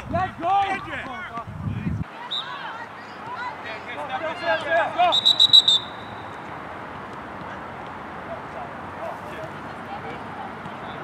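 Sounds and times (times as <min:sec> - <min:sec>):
distant players shouting: 0:00.1 - 0:11.0
referee whistle trilled blast: 0:05.1 - 0:06.3.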